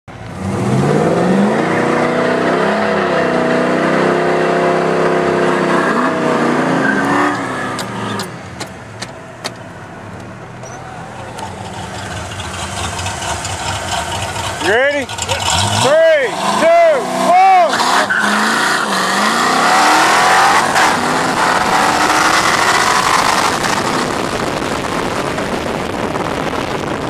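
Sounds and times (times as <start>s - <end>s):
car engine revving: 0.1s - 27.0s
low driving rumble: 6.0s - 17.3s.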